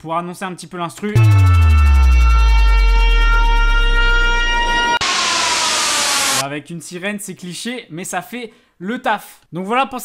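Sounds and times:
sub-bass drop gliding down: 0:01.2 - 0:06.4
synthetic siren tone: 0:01.2 - 0:06.4
white-noise sweep: 0:01.2 - 0:06.4.

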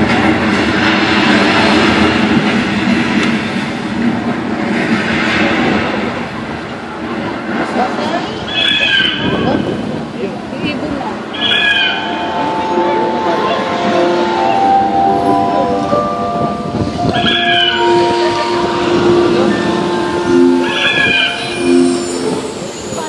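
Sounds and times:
crowd murmur: 0:05.6 - 0:23.0.

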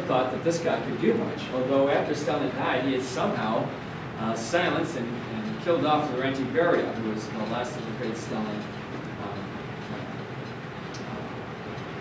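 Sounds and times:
classroom room noise: 0:00.0 - 0:12.0.

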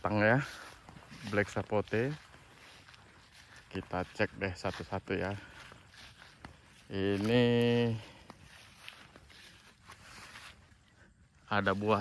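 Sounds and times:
footsteps through grass: 0:00.0 - 0:12.0.

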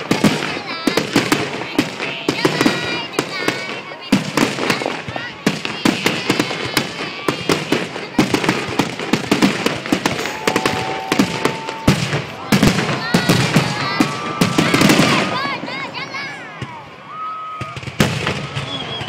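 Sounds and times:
crowd voices: 0:00.0 - 0:19.0
fireworks bursting: 0:00.0 - 0:19.0.

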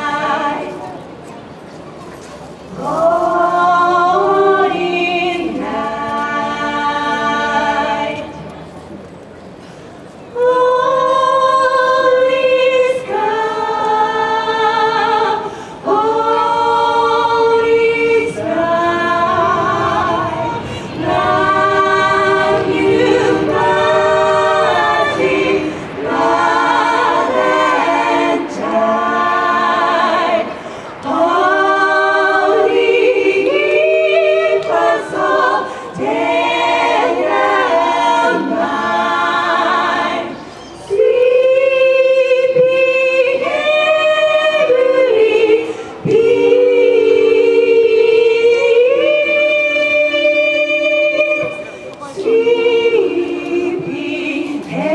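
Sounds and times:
women singing a cappella: 0:00.0 - 0:01.0, 0:02.7 - 0:08.5, 0:10.3 - 0:54.9.

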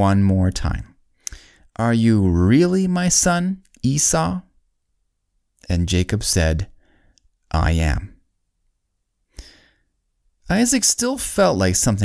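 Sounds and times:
person speaking: 0:00.0 - 0:04.6, 0:05.6 - 0:06.8, 0:07.5 - 0:08.2, 0:10.4 - 0:12.0
narrator breathing: 0:01.1 - 0:01.8, 0:06.7 - 0:07.2, 0:09.3 - 0:09.9.

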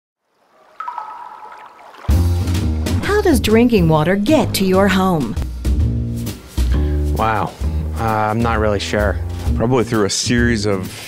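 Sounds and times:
water droplet plink: 0:00.7 - 0:02.3.

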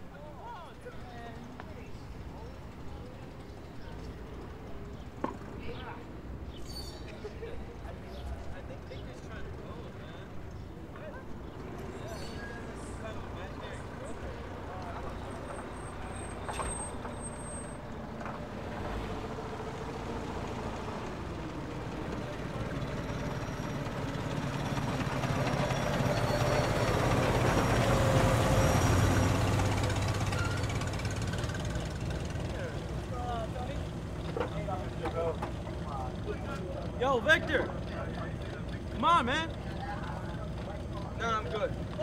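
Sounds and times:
faint voices: 0:29.1 - 0:42.0.

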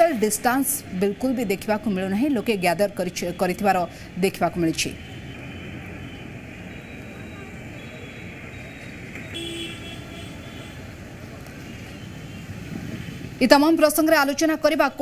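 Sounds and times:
traffic: 0:00.0 - 0:15.0
crowd voices: 0:05.6 - 0:09.2
vehicle horn: 0:09.3 - 0:10.8.

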